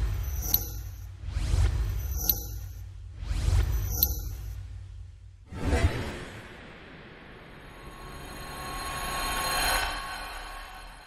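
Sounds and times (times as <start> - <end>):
shimmering swell: 7.0 - 11.0.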